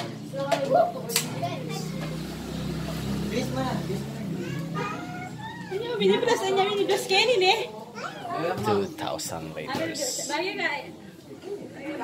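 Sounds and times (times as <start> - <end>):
scattered voices: 0.0 - 12.0
vehicle engine humming: 1.6 - 6.1.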